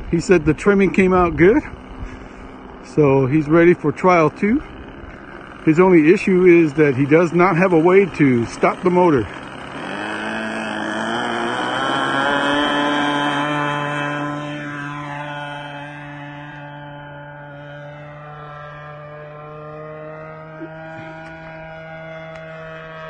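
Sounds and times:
model plane engine at high throttle: 0:00.0 - 0:23.0.

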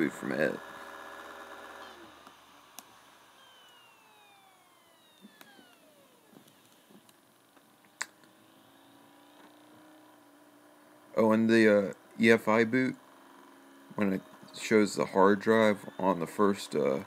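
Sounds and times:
drive whine spinning down: 0:00.0 - 0:17.0
low steady computer hum: 0:00.0 - 0:17.0
soft clicks: 0:05.0 - 0:08.4.

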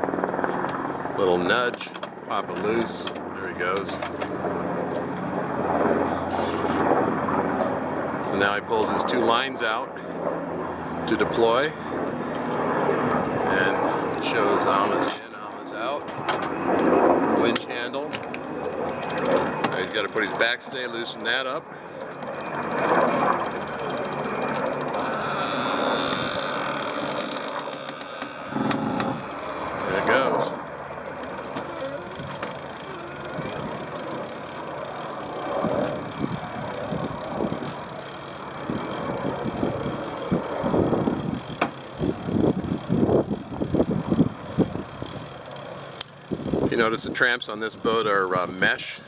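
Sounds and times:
boat rigging rustling and creaking: 0:01.4 - 0:05.1, 0:06.2 - 0:06.8, 0:18.2 - 0:21.2, 0:22.2 - 0:48.4.

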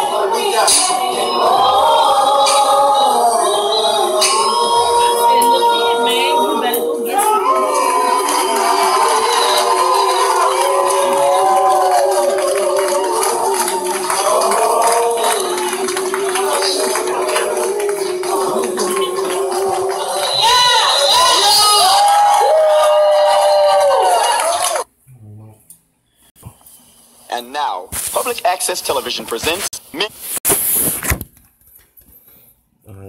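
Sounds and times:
live singing over music: 0:00.0 - 0:21.9
crowd noise: 0:00.0 - 0:24.9.

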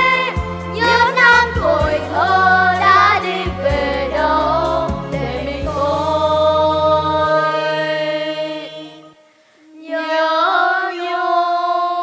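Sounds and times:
children singing held notes: 0:00.0 - 0:09.2, 0:09.8 - 0:12.0.

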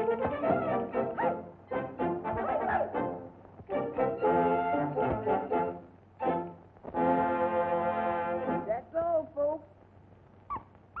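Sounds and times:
cartoon orchestra music: 0:00.0 - 0:08.7.

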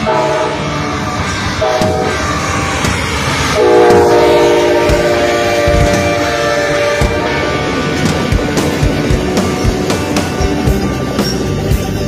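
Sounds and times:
locomotive chord horn: 0:00.0 - 0:02.2, 0:03.4 - 0:08.0
train running rumble: 0:00.0 - 0:12.0.

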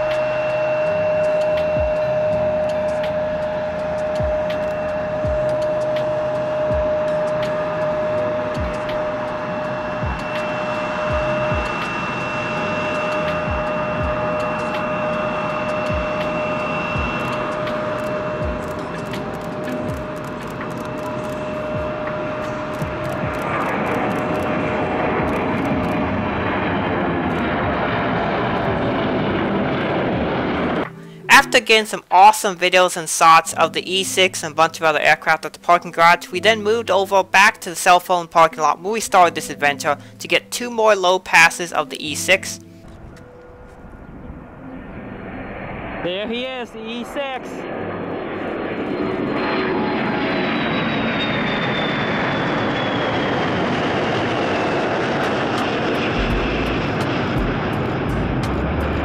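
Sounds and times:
jet engines whining: 0:00.0 - 0:59.0
rushing jet noise: 0:00.0 - 0:59.0.

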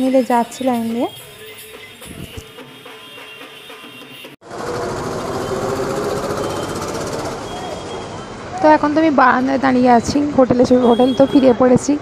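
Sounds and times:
traffic din: 0:00.0 - 0:12.0.

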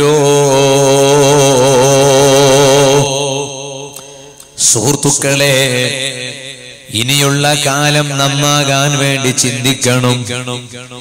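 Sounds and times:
man chanting through microphone: 0:00.0 - 0:11.0.

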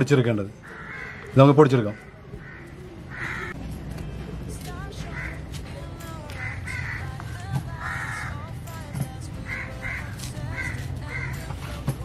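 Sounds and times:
crows cawing: 0:00.6 - 0:03.6, 0:05.1 - 0:05.5, 0:06.3 - 0:08.5, 0:09.4 - 0:11.7.

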